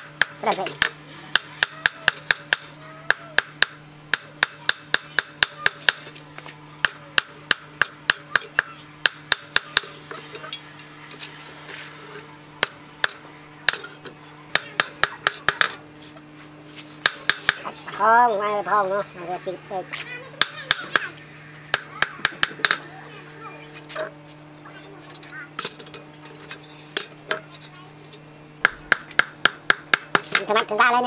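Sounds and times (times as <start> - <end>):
hammer striking steel on anvil: 0.0 - 6.2, 6.8 - 10.6, 12.6 - 15.8, 16.8 - 17.7, 20.3 - 22.8.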